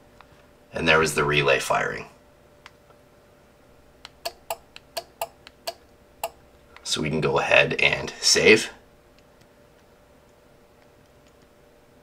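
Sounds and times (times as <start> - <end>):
buttons clicking: 4.0 - 6.4.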